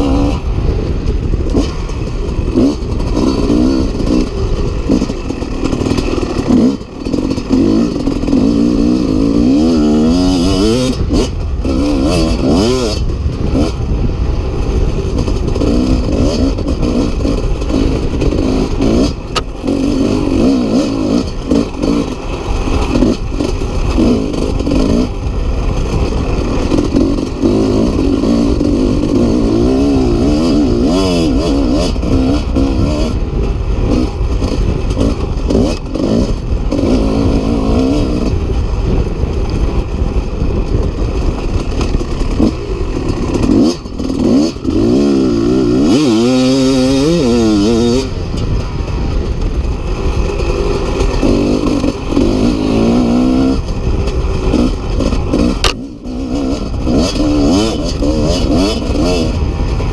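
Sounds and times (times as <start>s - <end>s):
two-stroke motorcycle engine revving: 0.0s - 59.9s.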